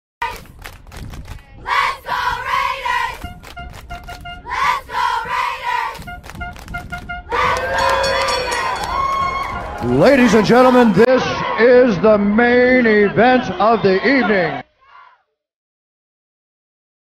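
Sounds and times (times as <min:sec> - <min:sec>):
crowd-like shouting voices: 0:07.3 - 0:15.3.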